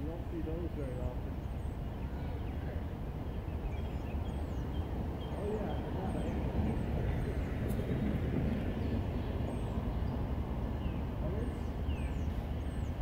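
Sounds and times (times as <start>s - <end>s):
train rumbling past: 0.0s - 13.0s.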